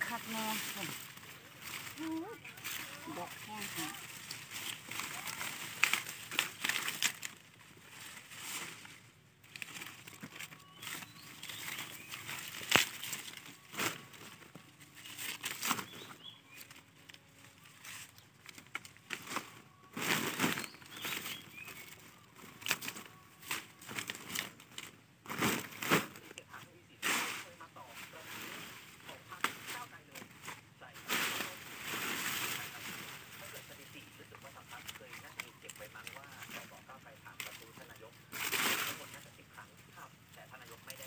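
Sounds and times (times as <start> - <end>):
plastic sack crinkling: 0.0 - 26.6, 27.4 - 41.0
leafy branches rustling: 0.0 - 41.0
branch snapping: 1.6 - 8.1, 9.5 - 14.1.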